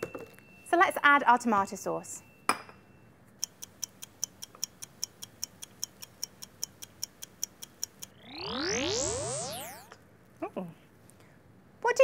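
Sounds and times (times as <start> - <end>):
clock ticking: 3.4 - 8.2.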